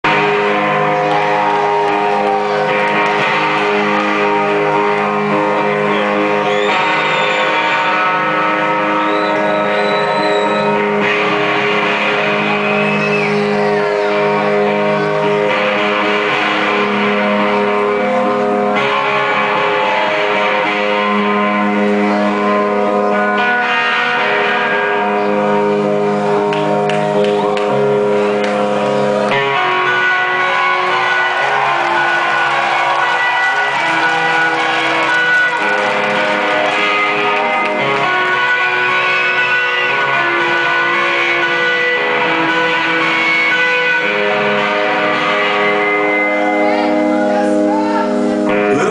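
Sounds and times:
distorted electric guitar chords: 0.0s - 48.9s.

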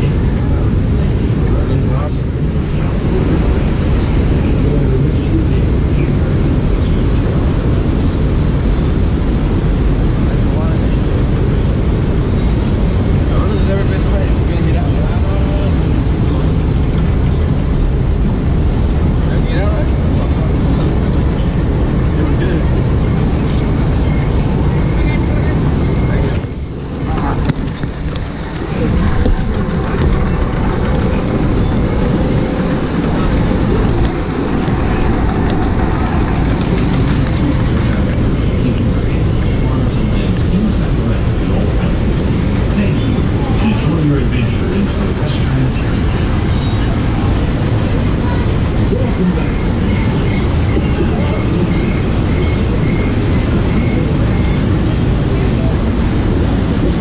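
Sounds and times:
indistinct voices: 0.0s - 57.0s
microphone rumble: 0.0s - 57.0s
water rushing in channel: 0.0s - 57.0s.

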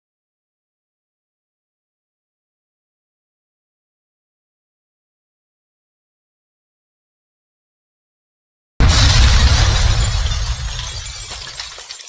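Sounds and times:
loud crash with deep boom: 8.8s - 11.8s.

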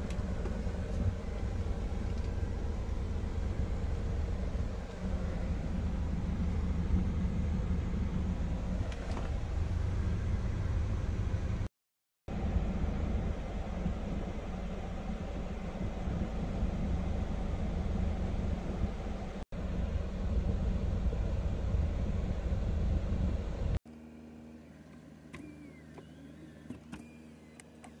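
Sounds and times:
car engine idling: 0.0s - 11.7s, 12.3s - 23.6s.

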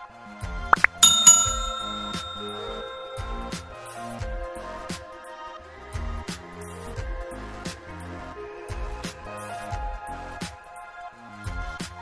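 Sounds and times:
bright bell chime: 0.8s - 4.2s.

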